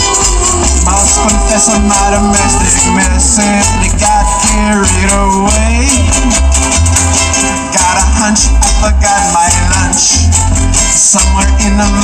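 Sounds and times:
reggae band playing: 0.0s - 12.0s
steady bass line: 0.0s - 12.0s.

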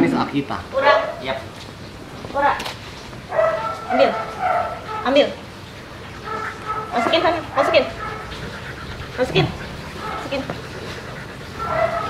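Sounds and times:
dog whining: 5.9s - 12.0s.

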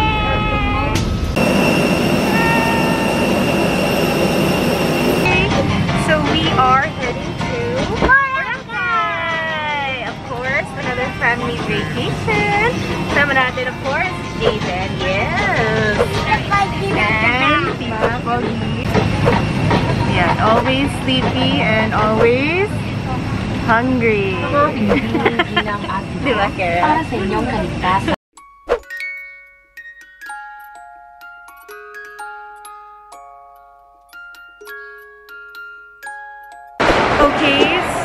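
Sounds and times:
steady high whine: 1.0s - 9.1s
background music: 5.2s - 18.6s.

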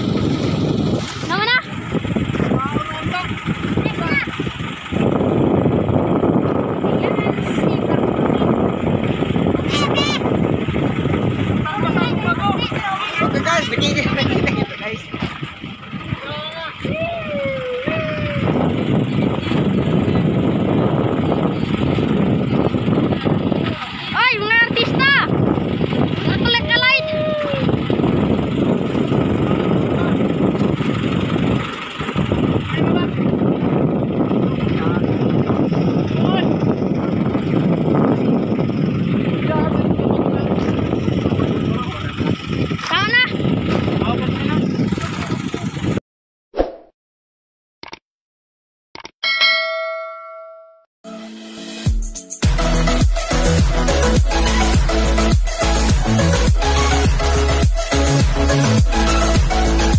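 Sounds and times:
loud boat noise: 0.0s - 46.0s, 52.4s - 59.9s
men calling out: 16.0s - 18.7s, 26.2s - 27.9s.

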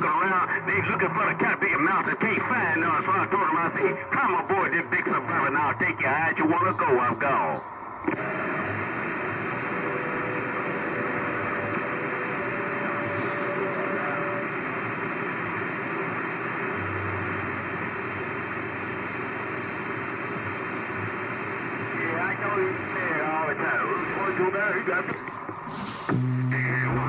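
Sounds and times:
warbling radio voices: 0.0s - 16.7s, 21.1s - 25.6s
radio static hiss: 0.0s - 27.0s.

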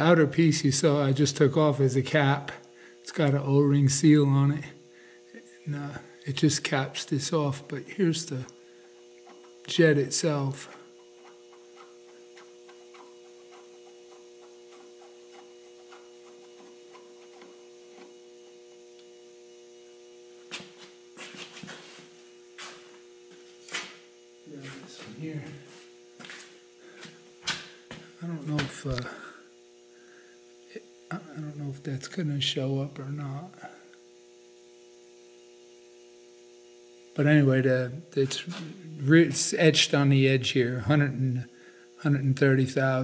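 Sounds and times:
two-tone electrical hum: 0.0s - 43.0s.

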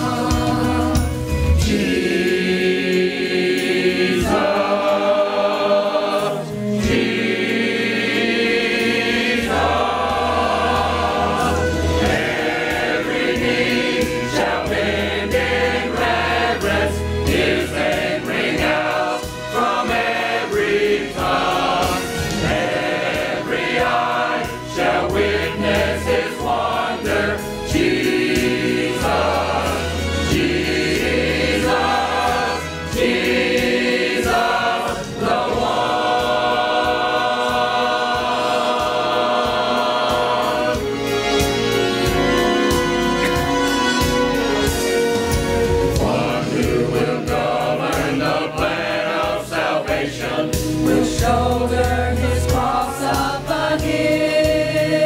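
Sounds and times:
church choir singing a hymn: 0.0s - 55.0s.

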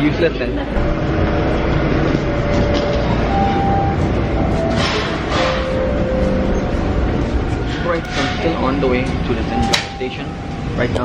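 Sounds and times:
subway train rumble: 0.0s - 11.0s.

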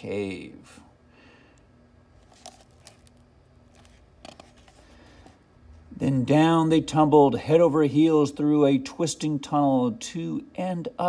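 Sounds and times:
book page turning: 2.2s - 5.4s.

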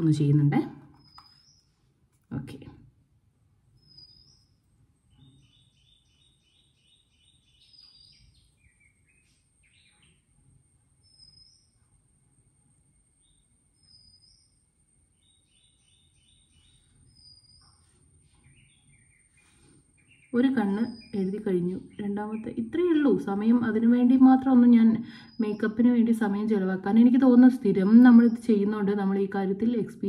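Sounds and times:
faint bird chirps: 0.0s - 2.7s, 3.7s - 30.0s.

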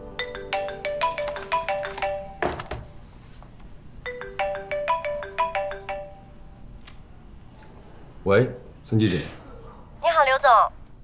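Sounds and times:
mobile phone ringtone melody: 0.0s - 2.6s, 4.0s - 6.6s.

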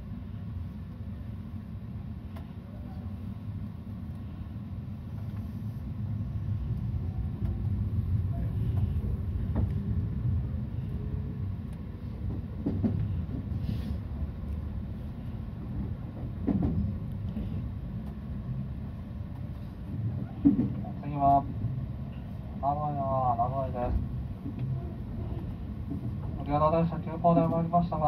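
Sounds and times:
electric train rumbling: 0.0s - 28.0s
train wheel clicks: 11.6s - 13.6s, 14.4s - 18.2s.

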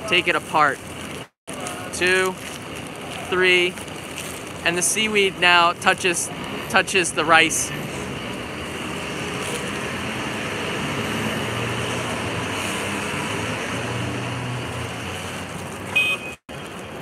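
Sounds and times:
traffic hum: 0.0s - 17.0s.

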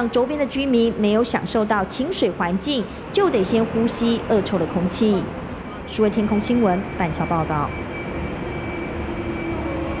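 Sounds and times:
highway traffic rumble: 0.0s - 10.0s.

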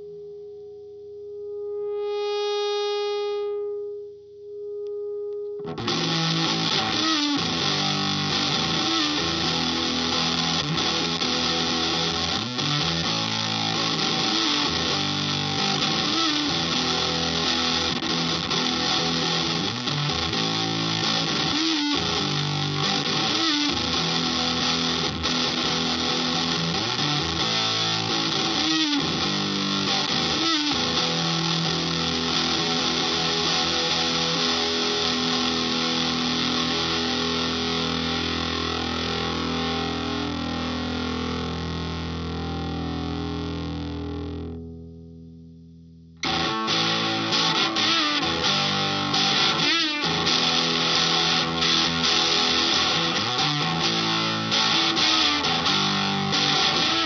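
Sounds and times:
fuzzed electric guitar: 0.0s - 57.0s.

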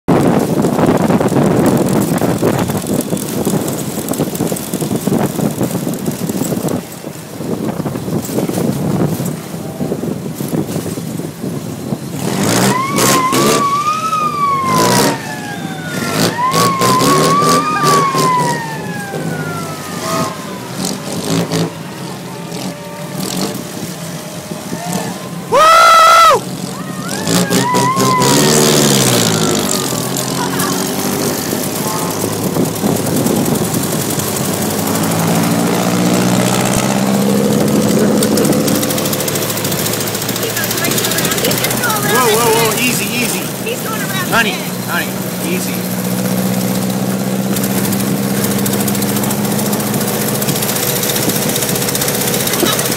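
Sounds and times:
car engines revving: 0.0s - 52.9s.

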